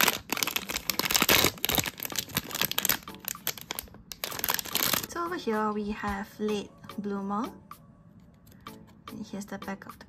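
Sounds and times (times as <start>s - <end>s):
plastic bag crinkling and tearing: 0.0s - 5.1s.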